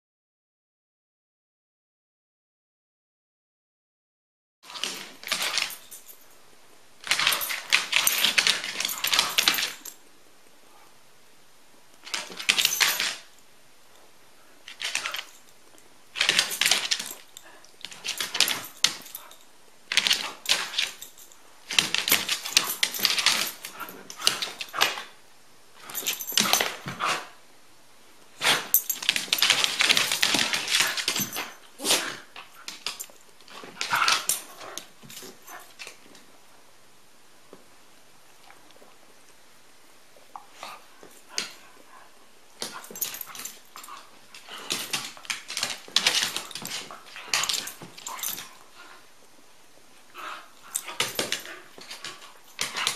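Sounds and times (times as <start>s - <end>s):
dogs play-fighting: 4.7s - 6.1s, 7.0s - 10.0s, 14.6s - 15.5s, 16.2s - 25.2s, 25.8s - 27.4s, 28.4s - 36.2s, 40.2s - 49.4s, 50.0s - 52.9s.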